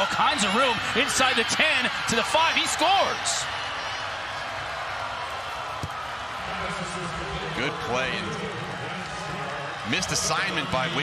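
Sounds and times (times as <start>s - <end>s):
stadium crowd cheering and clapping: 0.0s - 11.0s.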